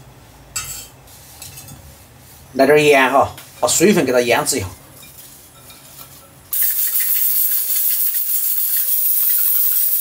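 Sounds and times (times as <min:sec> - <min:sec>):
pressure cooker venting steam: 0:06.5 - 0:10.0.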